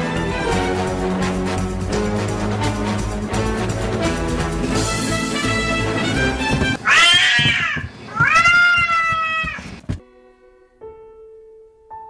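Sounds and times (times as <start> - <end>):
cat meowing: 6.8 - 9.8.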